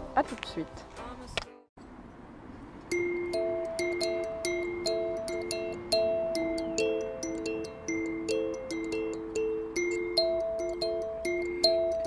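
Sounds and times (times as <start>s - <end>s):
ukulele picking: 2.9s - 12.0s.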